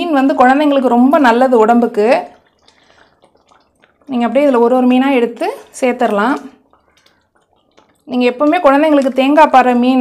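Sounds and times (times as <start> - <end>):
soft wet pops of gravy: 2.2 - 9.7.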